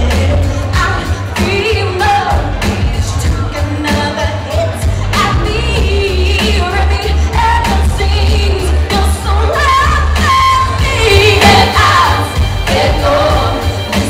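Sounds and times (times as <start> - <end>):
amplified backing music with bass: 0.0 - 14.0
woman singing with vibrato: 0.0 - 14.0
female backing singers: 8.7 - 14.0.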